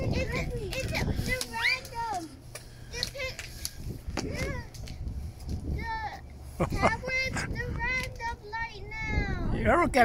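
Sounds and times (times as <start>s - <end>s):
people talking indistinctly: 0.0s - 5.0s, 5.6s - 10.0s.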